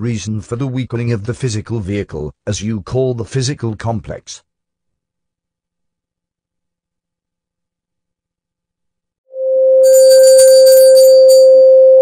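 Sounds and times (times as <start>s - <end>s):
loud bell tone: 9.8s - 12.0s
jingling chimes: 9.9s - 11.6s.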